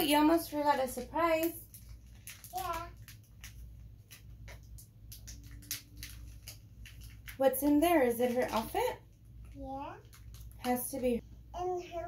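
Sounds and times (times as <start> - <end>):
plastic packet crinkling: 0.9 - 11.1.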